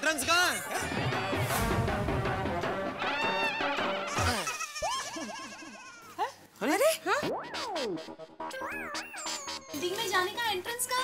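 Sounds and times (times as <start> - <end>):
comic background music: 0.7 - 4.4, 7.2 - 10.2.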